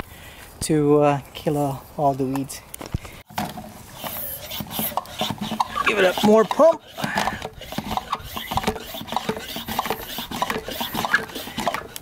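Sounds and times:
sprayer hand pump strokes: 3.4 - 12.0.

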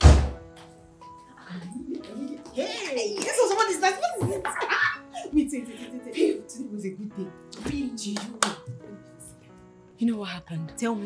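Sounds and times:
heavy deep thump: 0.0 - 0.5
woman's voice: 1.4 - 9.4, 10.0 - 11.0.

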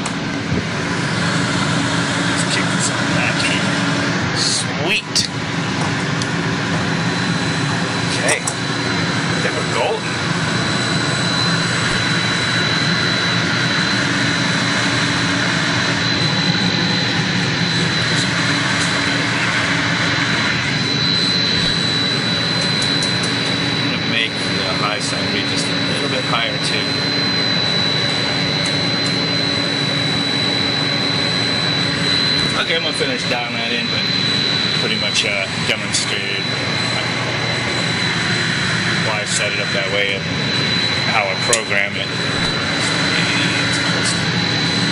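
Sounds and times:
high-pitched motor whine: 0.0 - 44.9
water pump motor drone: 0.0 - 44.9.

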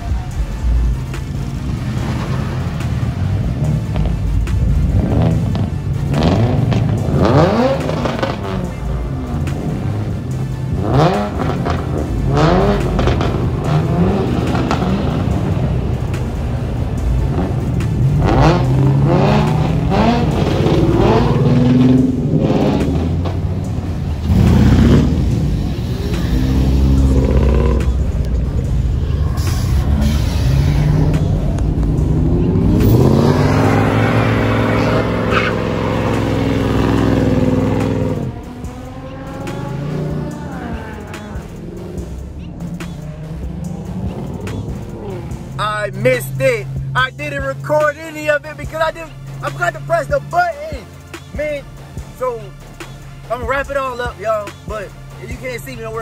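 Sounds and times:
car engines revving hard: 0.0 - 56.0.

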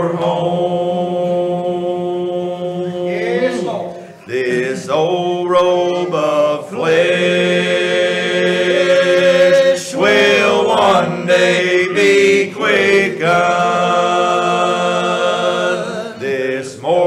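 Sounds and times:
men singing together: 0.0 - 17.0.

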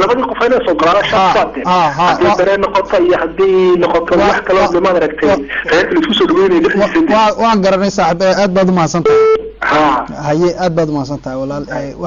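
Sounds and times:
person talking: 0.0 - 9.0, 9.6 - 12.0.

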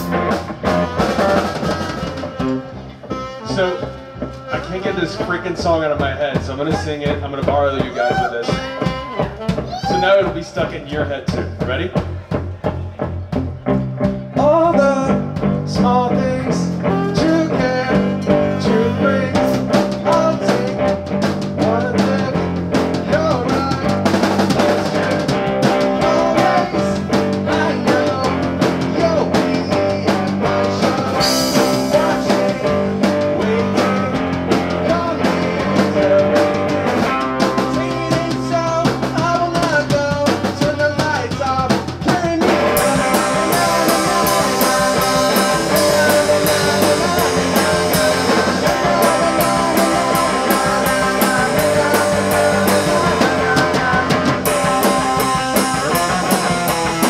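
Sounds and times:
saxophone: 0.0 - 7.1, 7.8 - 10.3, 16.5 - 21.0
electric guitar: 0.0 - 10.4, 11.3 - 57.0
drum kit: 0.0 - 57.0
man singing lead: 3.1 - 12.3, 14.2 - 57.0.

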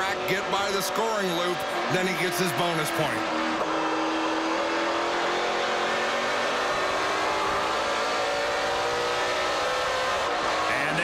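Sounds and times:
race car engine accelerating: 0.0 - 11.0.

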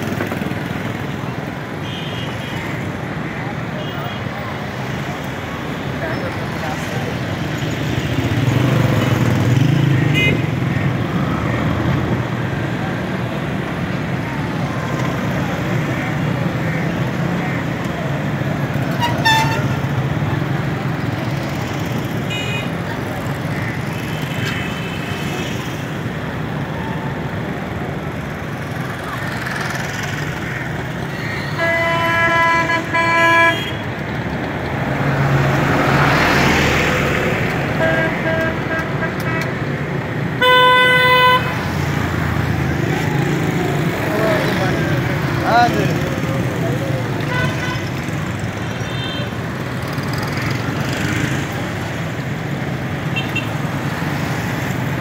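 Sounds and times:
motorcycle and rickshaw engines: 0.0 - 55.0.

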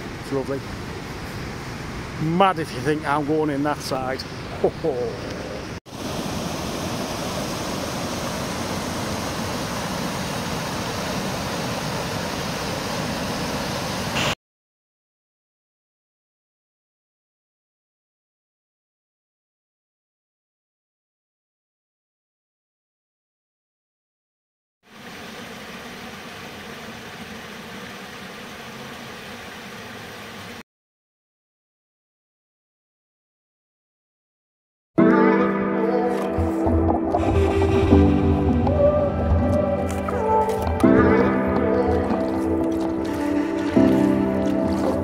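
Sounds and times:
water jetting and splashing: 5.4 - 14.4, 36.3 - 45.0
river rushing over weir: 5.9 - 14.4.

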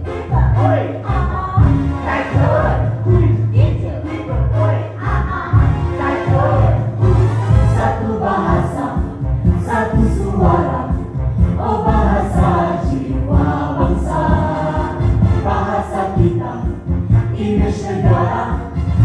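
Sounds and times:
group of voices singing: 0.0 - 19.0
musical accompaniment with heavy bass: 0.0 - 19.0.

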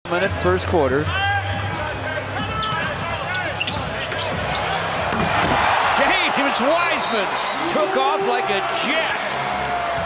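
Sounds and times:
arena crowd noise: 0.1 - 10.0
sneakers squeaking on hardwood: 0.4 - 5.8
basketball dribbling: 2.1 - 5.6.

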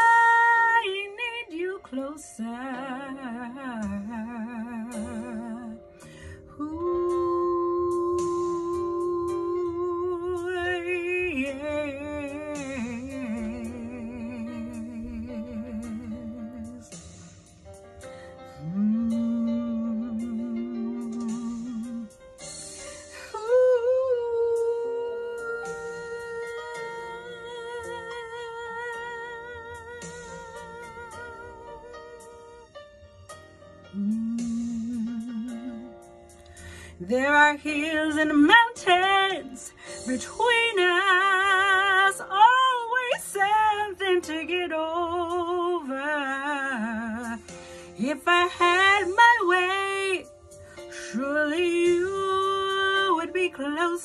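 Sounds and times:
soft instrumental backing: 0.0 - 54.0
woman singing a long note: 34.0 - 35.8.

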